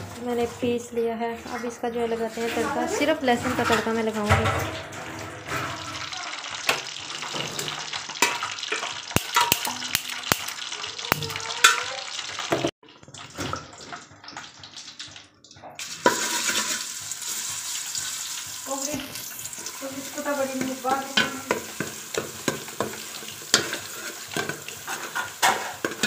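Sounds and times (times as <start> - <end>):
garlic sizzling in hot oil: 4.9 - 26.0.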